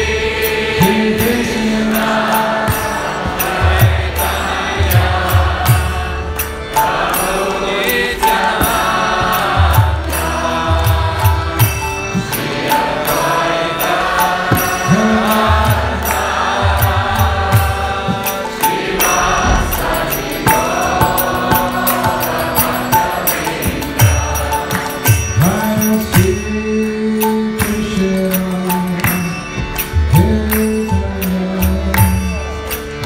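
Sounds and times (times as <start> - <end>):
harmonium: 0.0 - 33.0
hand cymbals ticking: 0.2 - 33.0.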